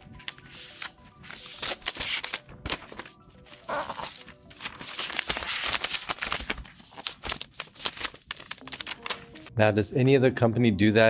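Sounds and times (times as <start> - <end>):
quiet background music: 0.0 - 11.0
plastic wrap rustling and crinkling: 0.2 - 9.5.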